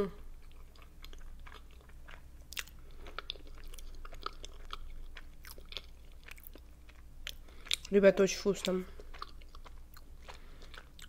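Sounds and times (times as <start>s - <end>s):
chewing with wet mouth clicks: 0.2s - 11.0s.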